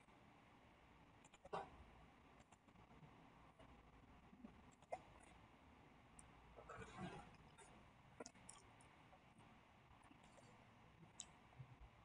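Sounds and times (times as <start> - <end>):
computer mouse clicks: 1.2 - 1.7.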